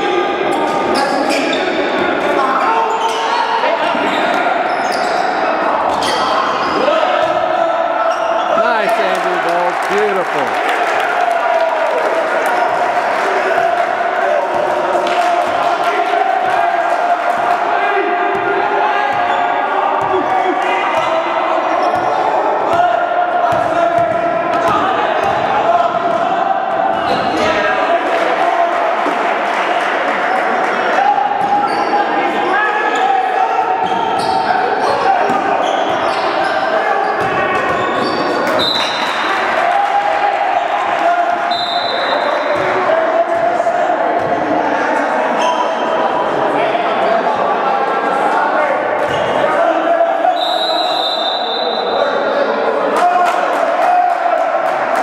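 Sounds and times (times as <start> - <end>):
voices in a hall: 0.0 - 55.0.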